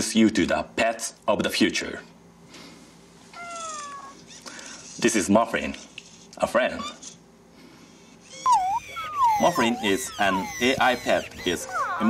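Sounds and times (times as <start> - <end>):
robot pet chirping call: 8.3 - 12.0.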